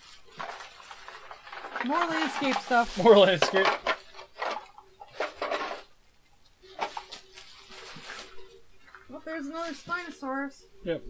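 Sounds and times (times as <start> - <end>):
plastic bag rustling: 0.0 - 6.0, 6.6 - 10.6
plastic toys knocking together: 1.3 - 5.8.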